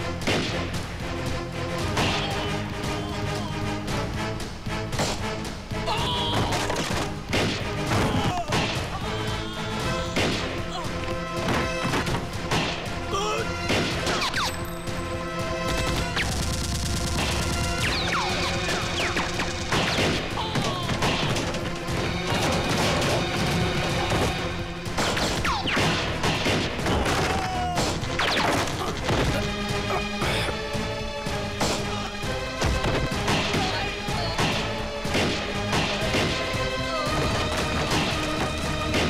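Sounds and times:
dramatic background score: 0:00.0 - 0:39.0
gunshot effects: 0:15.6 - 0:21.6, 0:22.2 - 0:29.4, 0:34.4 - 0:36.6.

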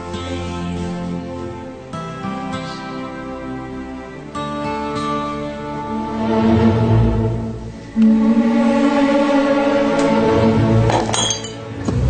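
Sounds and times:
background music held notes: 0:00.0 - 0:12.0
high glassy clinking: 0:10.9 - 0:11.7.

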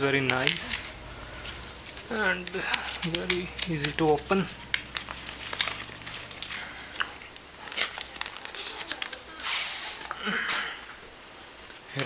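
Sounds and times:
cardboard packaging rustling and scraping: 0:00.2 - 0:10.2.

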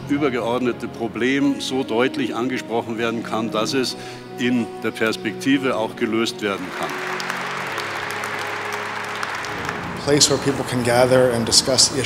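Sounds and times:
background music sustained notes: 0:00.0 - 0:12.0
audience applause: 0:06.5 - 0:12.0.

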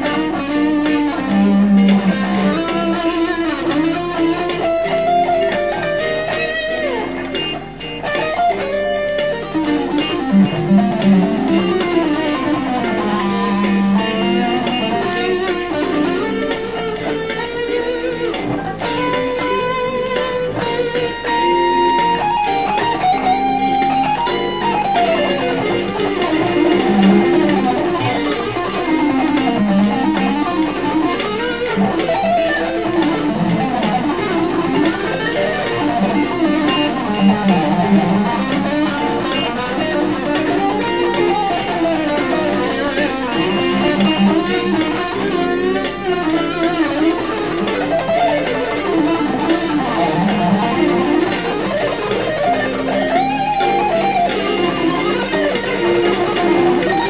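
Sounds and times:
backing track: 0:00.0 - 0:57.0
electric guitar lead lines: 0:00.0 - 0:57.0.

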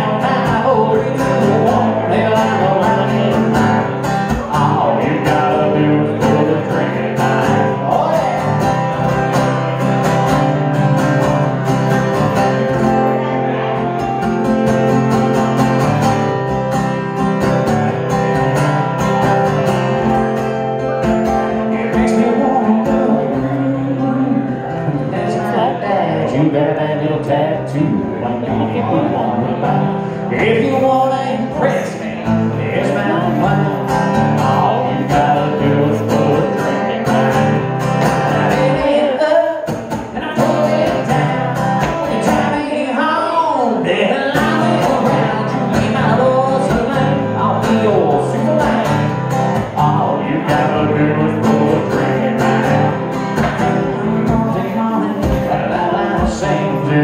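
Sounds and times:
man singing into a microphone: 0:00.0 - 0:09.1, 0:20.7 - 0:57.0
acoustic guitar strumming: 0:00.0 - 0:57.0.

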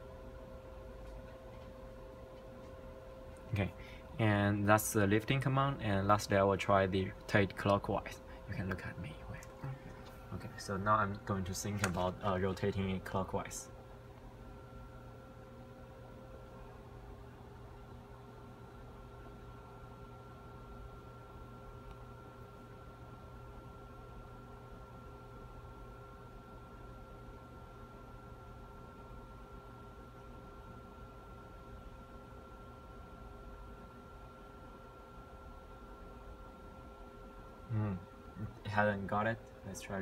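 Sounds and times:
low hum and hiss: 0:00.0 - 0:40.0.

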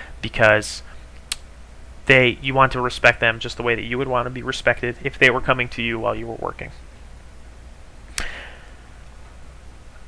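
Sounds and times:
low steady hum: 0:00.0 - 0:10.0
sharp click: 0:01.2 - 0:01.5.

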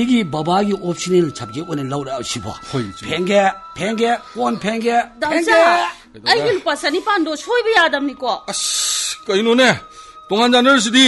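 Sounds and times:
voices speaking: 0:02.4 - 0:09.8.

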